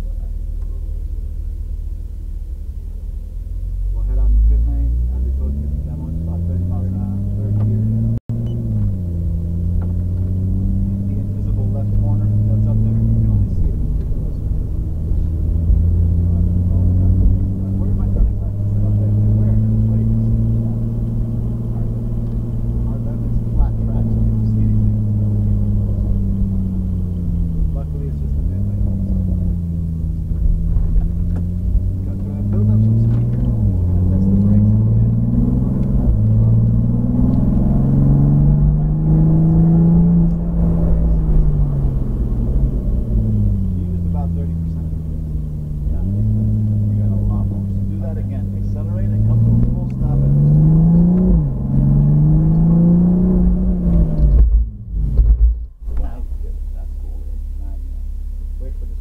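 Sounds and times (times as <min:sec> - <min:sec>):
car engine accelerating and braking: 0:00.0 - 0:59.0.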